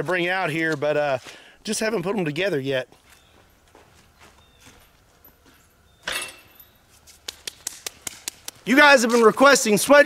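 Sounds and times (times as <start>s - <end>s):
footsteps crunching on dry leaves: 0.0s - 5.8s, 8.4s - 10.0s.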